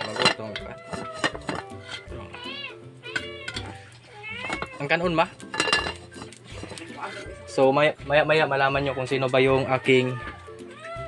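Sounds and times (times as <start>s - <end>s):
metal pot lid clinking: 0.0s - 2.4s, 3.1s - 3.8s, 4.4s - 7.2s
cat meowing: 0.6s - 5.2s, 9.6s - 11.0s.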